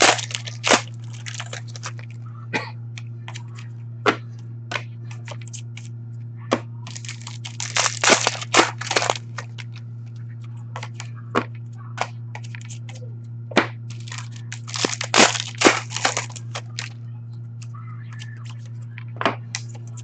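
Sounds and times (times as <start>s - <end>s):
cards and wrappers rustling: 0.0s - 2.2s, 6.9s - 9.8s, 13.9s - 16.9s, 18.1s - 18.8s
steady low hum: 0.0s - 20.0s.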